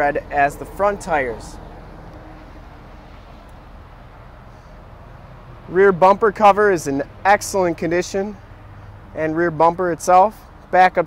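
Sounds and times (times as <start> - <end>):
low outdoor rumble: 0.0 - 10.8.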